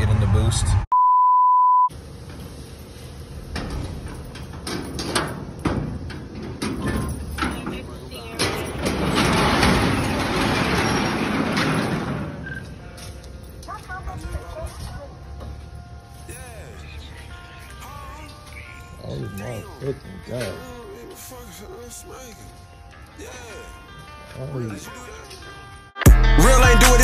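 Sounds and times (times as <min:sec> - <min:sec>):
test-tone beep: 0:00.9 - 0:01.9.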